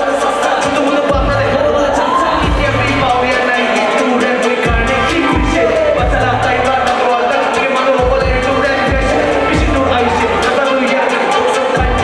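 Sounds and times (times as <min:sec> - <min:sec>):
hi-hats ticking: 0:00.0 - 0:12.0
hip-hop beat over club speakers: 0:00.0 - 0:12.0
voice over beat: 0:00.0 - 0:12.0
kick drum and bass thumping: 0:02.4 - 0:02.9, 0:08.0 - 0:09.9.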